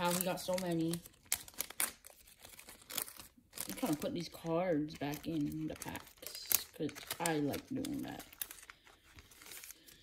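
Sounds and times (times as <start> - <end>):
person talking: 0.0 - 1.1, 3.7 - 8.3
foil wrappers and cards crinkling: 0.0 - 10.0.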